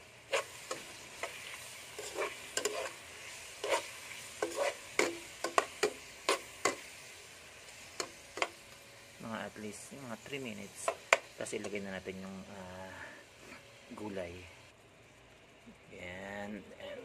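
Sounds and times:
faint sizzle: 0.0 - 17.0
metal spoon scraping pan: 0.3 - 6.9.

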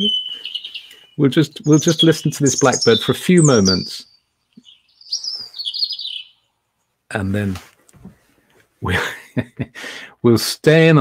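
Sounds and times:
blackbird singing: 0.0 - 6.6.

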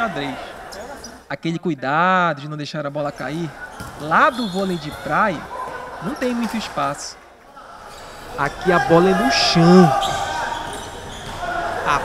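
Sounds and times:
footwork on court floor: 3.5 - 6.8, 7.8 - 12.0
ball on court floor: 3.6 - 6.6, 10.0 - 11.9.

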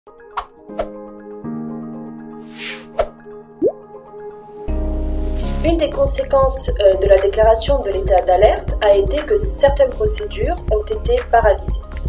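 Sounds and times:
rising-pitch pop: 3.6 - 3.8.

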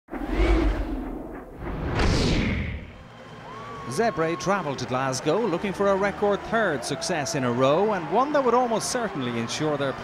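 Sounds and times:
whoosh and boom transition: 0.1 - 3.0
quiet stadium crowd: 2.8 - 10.0
man narrating: 3.9 - 10.0.

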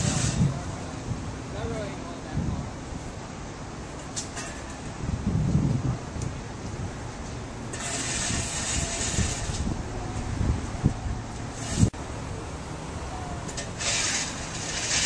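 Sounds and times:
road traffic rumble: 0.0 - 15.0
hiss: 7.7 - 9.6, 13.6 - 15.0.

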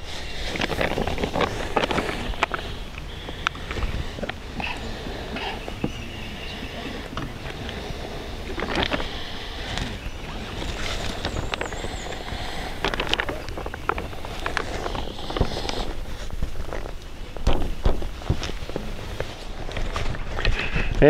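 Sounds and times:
footsteps on forest floor: 0.0 - 20.7
tarp crinkling: 0.0 - 21.0
clicks and knocks of stake: 9.7 - 20.7.

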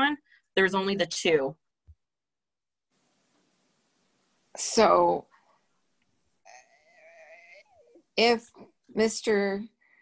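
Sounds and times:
faint wavering hesitation voice: 6.5 - 8.0.

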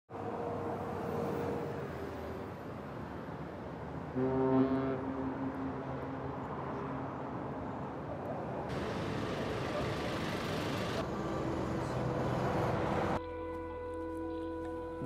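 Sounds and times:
outdoor city hum: 0.1 - 15.0
boat horn blast: 4.1 - 7.0, 13.2 - 15.0.

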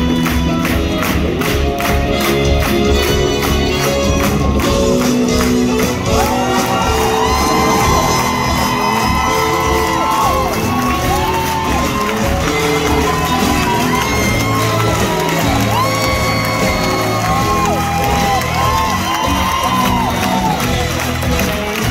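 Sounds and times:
theatre band playing upbeat music: 0.0 - 21.9
audience cheering and whooping: 5.4 - 21.9.

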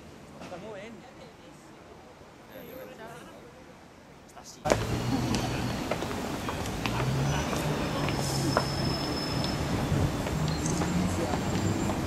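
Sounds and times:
passing vehicles rumbling: 4.0 - 12.0.

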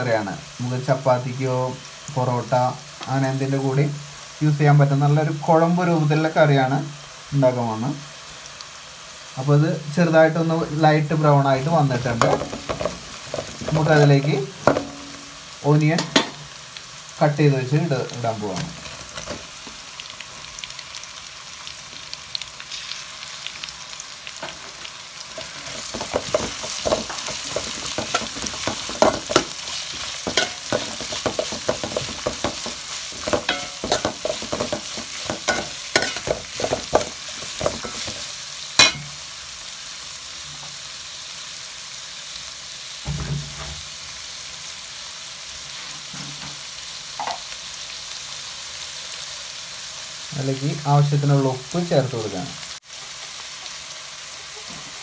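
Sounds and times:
onions sizzling in hot oil: 0.0 - 55.0
metal spoon scraping pot: 25.5 - 38.2.

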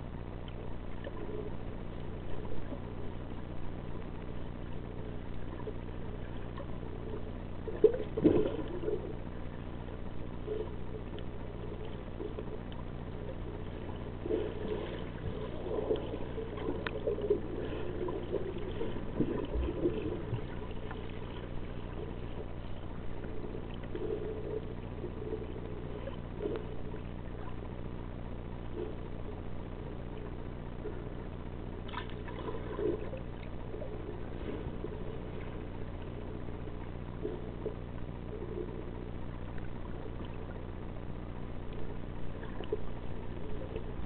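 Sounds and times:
steady low hum: 0.0 - 44.0
water sloshing and gurgling: 0.0 - 44.0.

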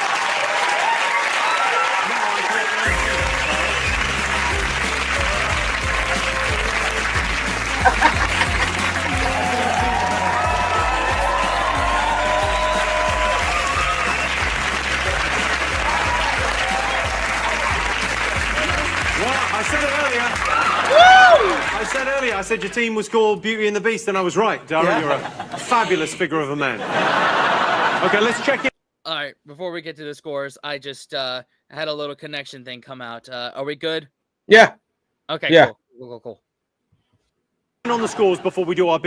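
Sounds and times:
audience applauding and cheering: 0.0 - 23.0
music with steady bass line: 2.9 - 20.9.

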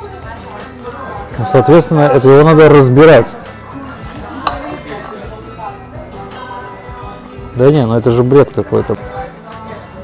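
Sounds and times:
background music: 0.0 - 10.0
knife and fork clinking on plate: 4.4 - 5.4.

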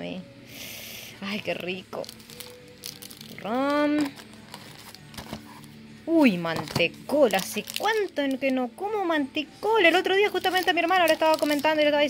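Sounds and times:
plastic candy wrappers rustling: 1.4 - 5.7, 6.6 - 8.6, 9.8 - 12.0.

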